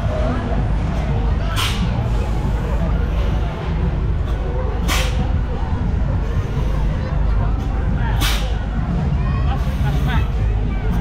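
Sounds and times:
ride machinery rumble: 0.0s - 11.0s.

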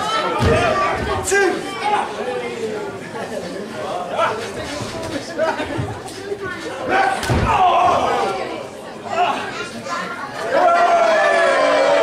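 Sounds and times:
crowd chatter: 0.0s - 12.0s
crowd shouting: 6.8s - 9.6s, 10.4s - 12.0s.

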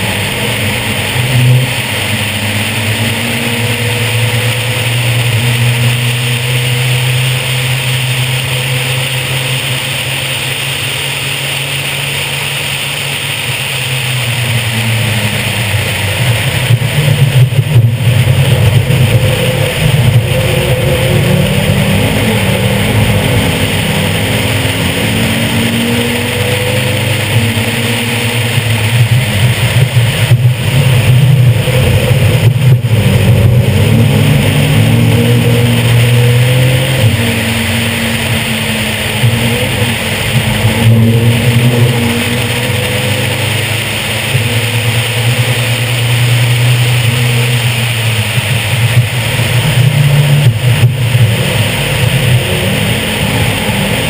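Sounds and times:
race car engine revving: 0.0s - 54.0s
wind noise: 0.0s - 54.0s.

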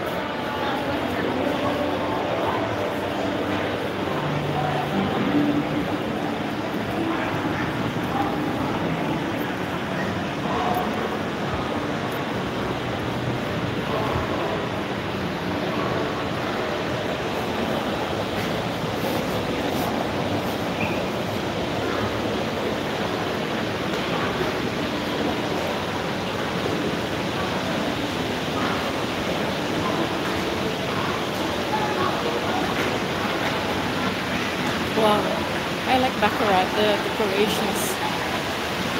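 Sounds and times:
even wash of mall noise: 0.0s - 38.9s
faint distant voices: 0.0s - 38.9s.

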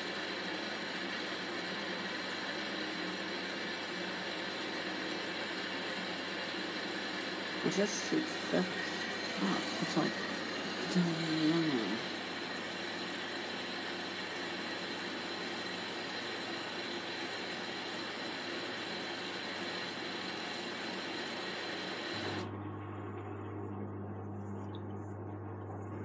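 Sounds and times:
washing machine drum whirring: 0.0s - 26.0s
steady low hum: 7.6s - 13.8s, 21.9s - 26.0s.

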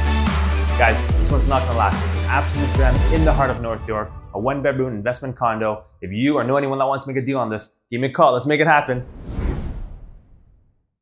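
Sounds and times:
whoosh with low rumble: 9.0s - 10.8s.

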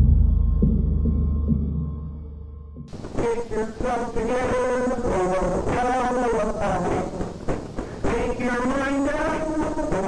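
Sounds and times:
harsh distorted warbling buzz: 2.9s - 10.0s.

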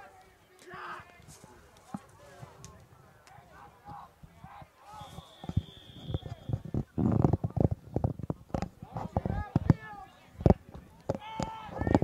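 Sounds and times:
high whistle: 4.9s - 6.6s.

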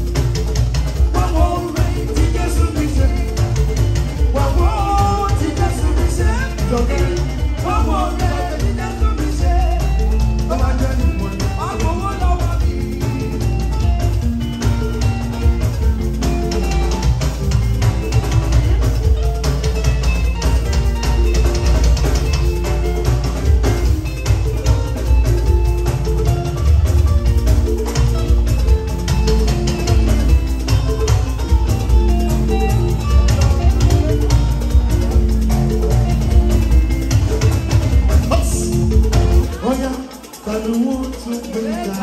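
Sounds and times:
live band music: 0.0s - 42.0s
plucked guitar melody: 0.0s - 42.0s.

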